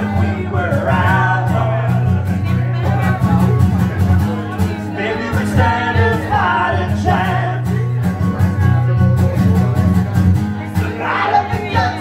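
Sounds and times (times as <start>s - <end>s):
guitar strummed through pa: 0.0s - 12.0s
person singing: 4.8s - 8.0s, 10.6s - 12.0s.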